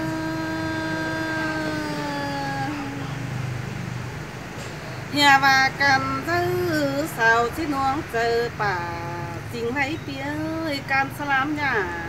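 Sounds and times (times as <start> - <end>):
woman singing unaccompanied: 0.0 - 3.3, 5.1 - 12.0.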